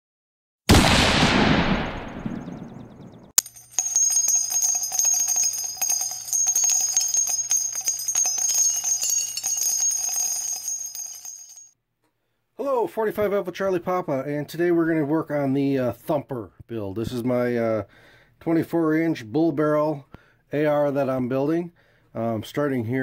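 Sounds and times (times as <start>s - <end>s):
loud crash: 0.7s - 3.0s
bell-like ringing with small clicks: 3.4s - 11.7s.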